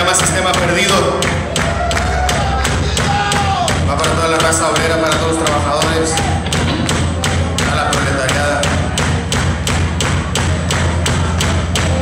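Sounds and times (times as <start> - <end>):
drums playing a steady beat: 0.0 - 12.0
held low bass line: 0.0 - 12.0.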